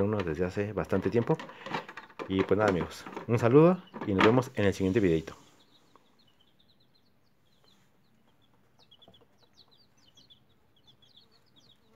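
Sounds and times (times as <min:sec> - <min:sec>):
chicks peeping: 0:00.0 - 0:11.9.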